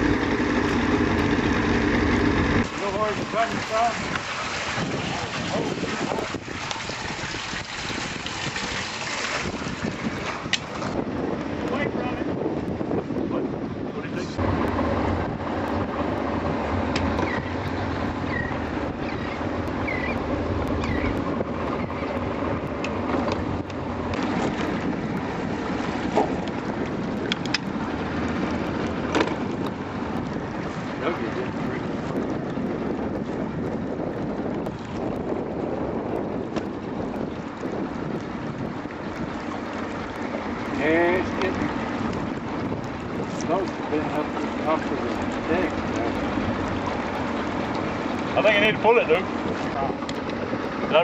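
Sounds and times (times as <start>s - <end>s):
wind noise on microphone: 0.0s - 51.0s.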